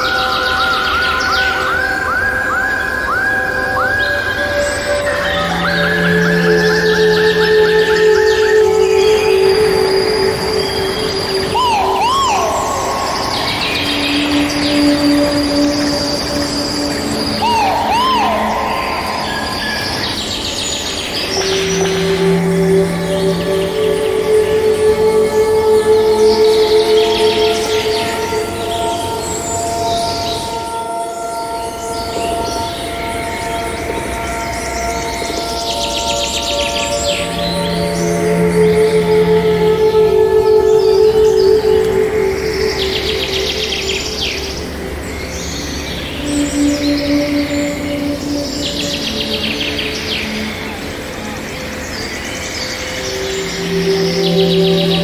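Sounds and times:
looping bird call: 0:00.0 - 0:28.5
birds chirping and trilling: 0:00.0 - 0:55.0
slow ambient music: 0:00.0 - 0:55.0.

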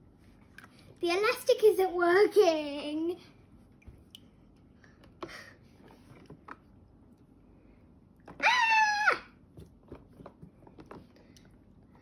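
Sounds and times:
child's high-pitched squeal: 0:08.4 - 0:09.4.

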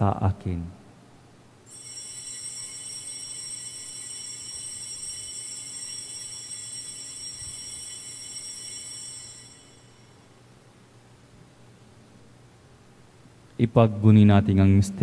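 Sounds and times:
altar bells ringing: 0:01.7 - 0:10.5.

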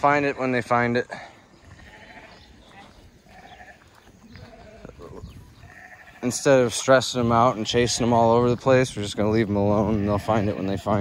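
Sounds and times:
sheep and goats bleating: 0:01.1 - 0:08.5, 0:09.3 - 0:11.0.

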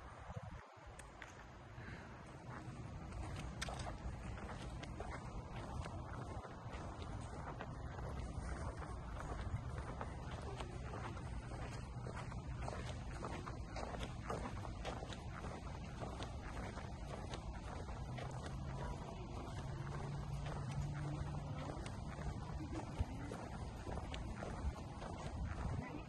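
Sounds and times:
wind rumbling on microphone: 0:00.0 - 0:26.0
soft footsteps: 0:00.3 - 0:26.0.

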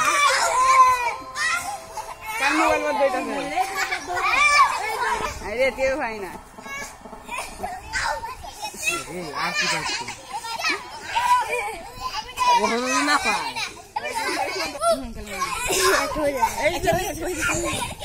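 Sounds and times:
children shouting: 0:00.0 - 0:05.6, 0:06.2 - 0:18.0.

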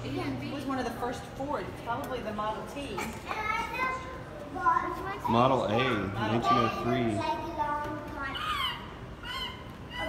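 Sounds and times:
child calling out: 0:08.2 - 0:10.0.

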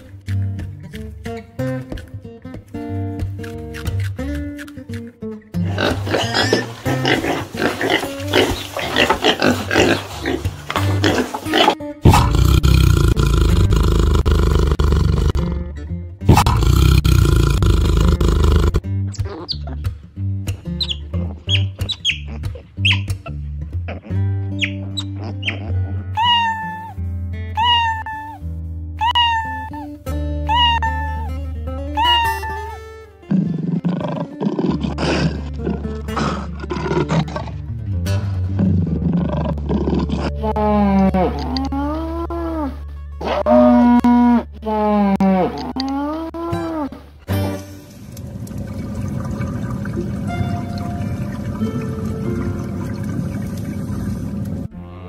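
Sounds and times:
acoustic guitar music: 0:00.0 - 0:12.3, 0:14.8 - 0:16.5, 0:35.0 - 0:39.0, 0:47.2 - 0:54.8
tiger roaring: 0:10.9 - 0:15.7, 0:16.3 - 0:18.8
piglets squealing: 0:20.8 - 0:23.2, 0:24.0 - 0:26.9, 0:27.6 - 0:28.4, 0:29.0 - 0:29.8, 0:32.0 - 0:32.8.

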